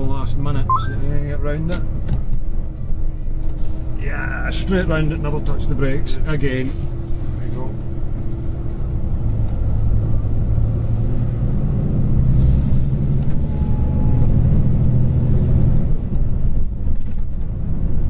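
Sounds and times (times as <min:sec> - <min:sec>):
diesel truck engine droning: 0:00.0 - 0:18.0.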